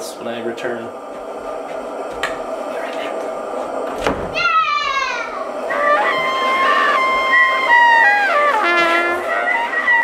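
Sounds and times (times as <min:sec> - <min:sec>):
thump: 0:04.0 - 0:04.4
falling tone: 0:04.3 - 0:10.0
held horn-like fanfare notes: 0:05.7 - 0:10.0.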